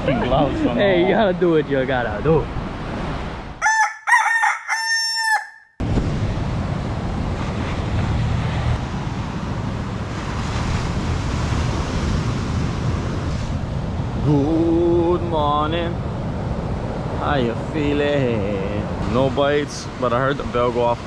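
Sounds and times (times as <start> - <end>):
rooster crowing: 3.6 - 5.8
wind on microphone: 5.8 - 20.8
surf rushing: 5.8 - 21.0.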